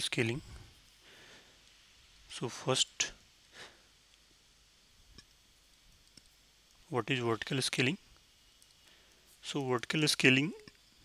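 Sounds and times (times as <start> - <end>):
man speaking: 0.0 - 0.4, 2.3 - 3.2, 6.9 - 8.0, 9.4 - 10.6.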